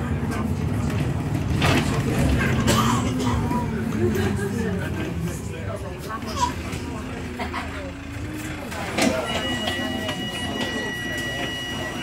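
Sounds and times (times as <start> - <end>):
bus engine idling rumble: 0.0 - 12.0.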